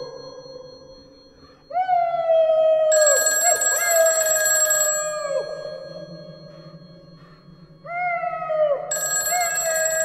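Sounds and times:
bell ringing: 8.9s - 10.0s.

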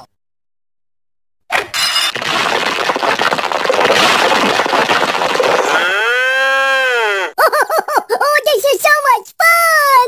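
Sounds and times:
high-pitched laughing: 7.4s - 8.5s.

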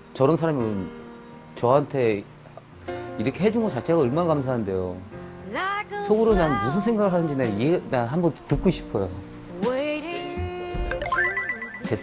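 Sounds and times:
bright electronic ringing figure: 11.0s - 12.0s.

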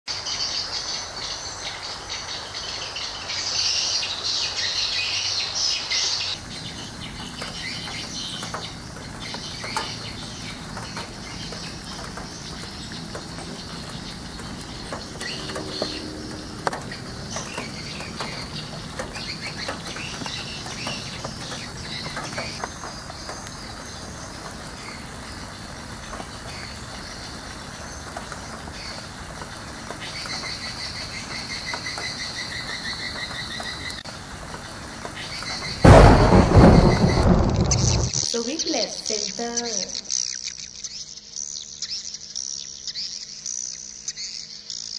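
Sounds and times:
birds calling: 0.1s - 44.9s
high insect chorus: 0.1s - 44.9s.

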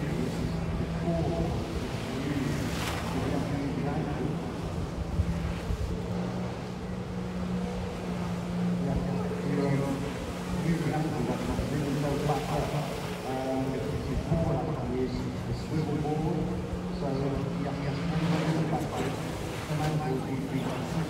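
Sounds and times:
jet ski engine running: 0.0s - 21.0s
voices talking: 0.0s - 21.0s.

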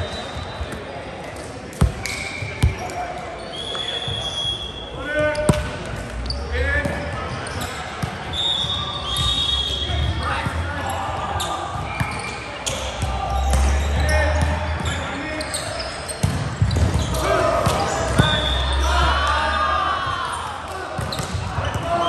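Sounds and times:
sneakers squeaking on floor: 0.0s - 20.2s, 20.8s - 22.0s
players shouting: 8.4s - 16.0s, 16.6s - 22.0s.

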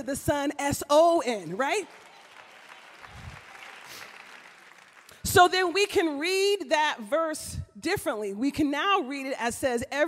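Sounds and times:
congregation applauding: 1.4s - 6.0s.

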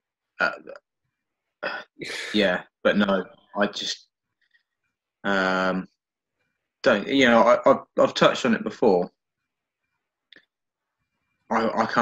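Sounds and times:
brief vocal sound: 1.6s - 2.5s
man grunting: 1.6s - 2.5s.

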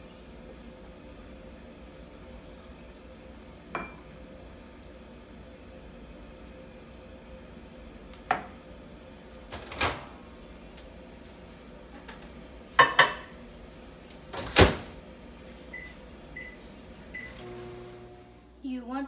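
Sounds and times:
glass cup and bowl clinking: 3.8s - 4.0s.

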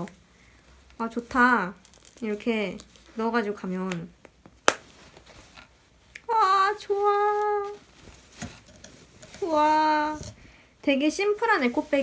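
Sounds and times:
canvas rustling: 0.0s - 3.8s, 4.8s - 10.5s, 11.1s - 12.0s.

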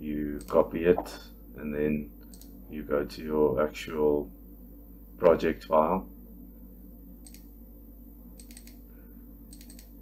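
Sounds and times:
steady low hum: 0.0s - 10.0s
computer mouse clicking: 7.2s - 7.5s, 8.4s - 8.8s, 9.5s - 10.0s.

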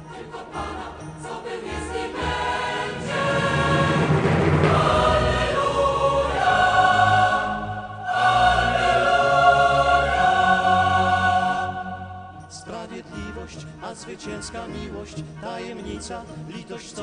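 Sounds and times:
choir holding long notes: 0.0s - 13.5s.

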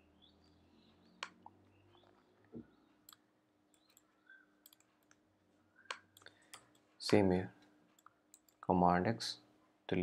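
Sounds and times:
computer mouse and keyboard clicks: 3.1s - 5.2s.

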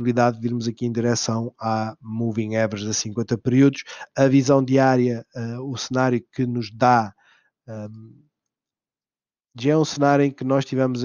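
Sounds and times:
man speaking: 0.0s - 7.1s, 7.7s - 8.1s, 9.6s - 11.0s.

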